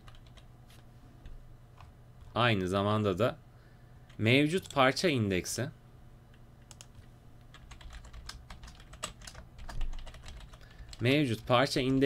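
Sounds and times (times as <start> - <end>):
typing on computer keyboard: 0.0 - 0.5, 6.6 - 11.0.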